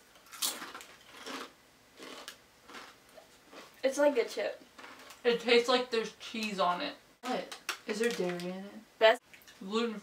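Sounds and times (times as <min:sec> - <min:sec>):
potato chips crunching: 0:00.1 - 0:03.8, 0:04.8 - 0:05.2.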